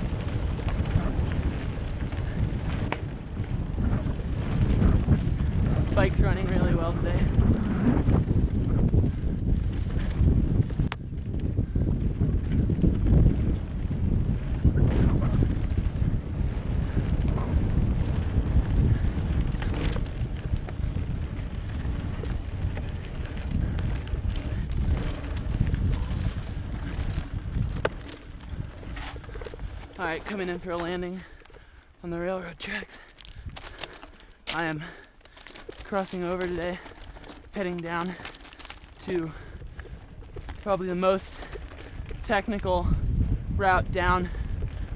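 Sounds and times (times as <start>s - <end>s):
bike knocks and rattles: 0.0s - 31.0s
bike tyres rolling on dirt: 0.0s - 44.9s
wind rushing over microphone: 0.0s - 44.9s.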